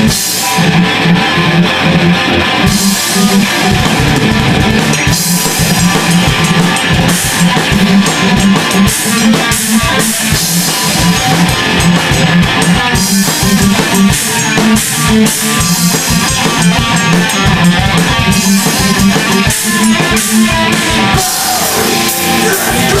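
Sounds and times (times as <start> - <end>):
drum kit: 0.0 - 23.0
electric guitars: 0.0 - 23.0.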